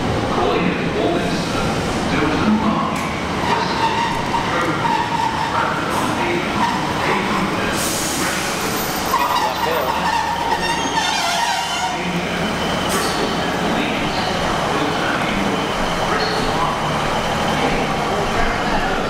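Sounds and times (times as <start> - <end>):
diesel train pulling in: 0.0 - 19.0.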